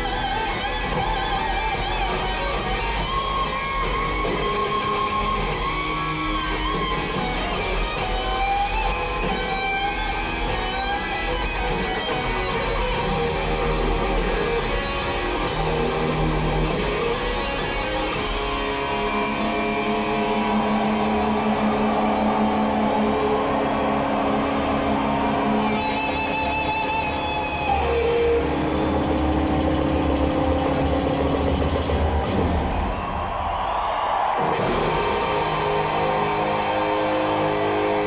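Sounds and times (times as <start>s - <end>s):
drums rumbling: 0.0s - 38.0s.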